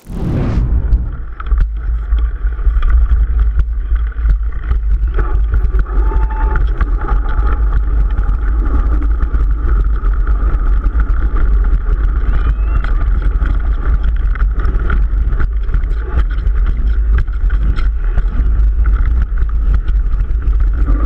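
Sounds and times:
wind rumble on microphone: 0.0s - 21.0s
bike clicks and rattles: 1.3s - 21.0s.

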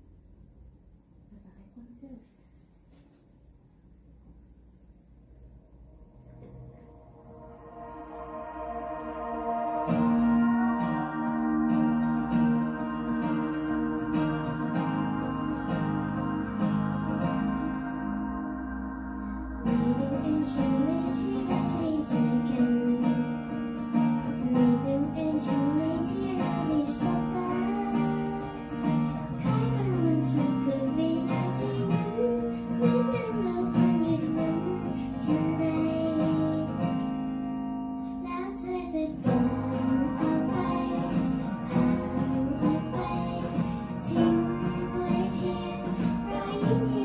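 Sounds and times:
recorded instrumental accompaniment: 6.4s - 47.0s
girl singing into microphone: 19.2s - 37.4s, 38.0s - 47.0s.

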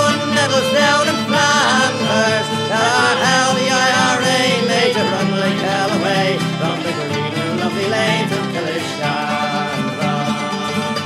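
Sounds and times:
folk band playing: 0.0s - 11.0s
folk song chorus sung: 0.0s - 11.0s.

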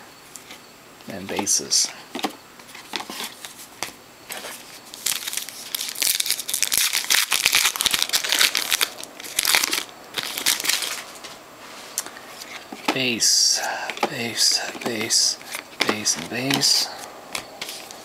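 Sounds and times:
foil wrapper crinkling: 4.3s - 11.2s.

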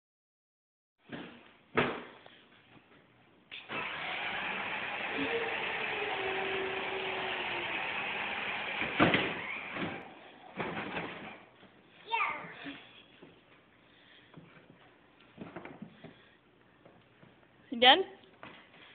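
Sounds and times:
toy car motors whirring: 3.6s - 11.4s.

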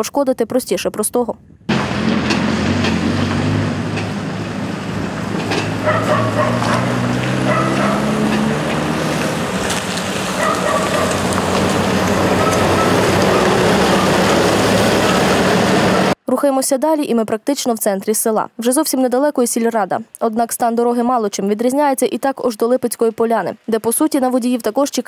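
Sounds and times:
van engine humming: 1.7s - 16.2s.

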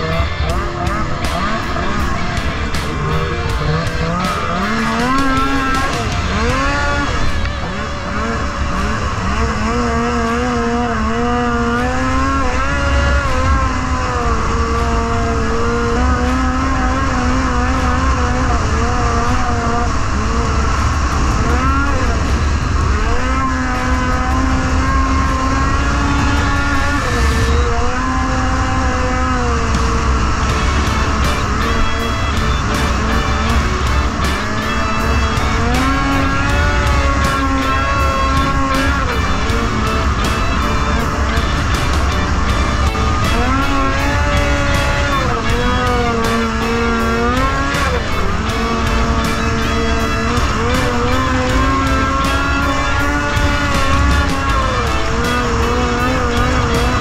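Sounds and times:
snowmobile engine revving: 0.0s - 57.0s
steady low rumble: 0.0s - 57.0s.

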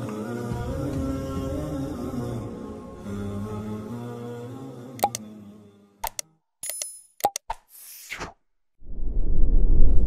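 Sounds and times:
mouse clicks: 5.0s - 5.2s.

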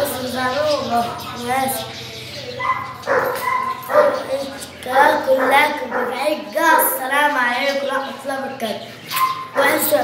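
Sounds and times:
boy's voice: 0.0s - 1.9s, 4.2s - 9.0s, 9.6s - 10.0s
dog barking: 2.6s - 4.3s, 5.0s - 7.0s, 9.1s - 9.9s.

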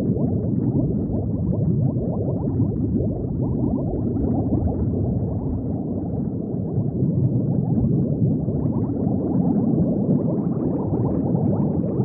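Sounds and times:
underwater bubbling: 0.0s - 12.0s.

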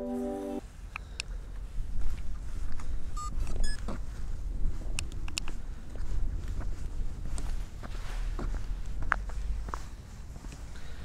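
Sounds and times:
low wind rumble on microphone: 0.8s - 10.8s.

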